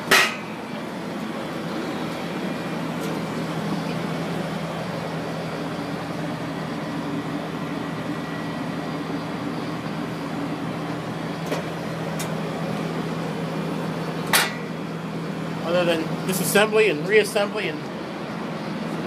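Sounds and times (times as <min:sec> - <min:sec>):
printing press mechanical hum: 0:00.0 - 0:19.0.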